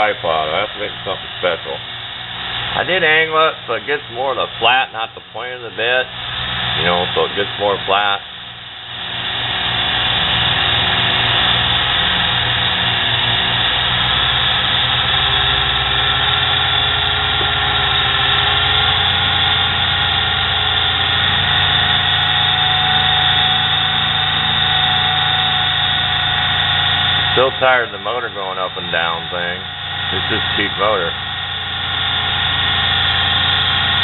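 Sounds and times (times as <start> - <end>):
small electric motor whining: 5.7 - 34.0.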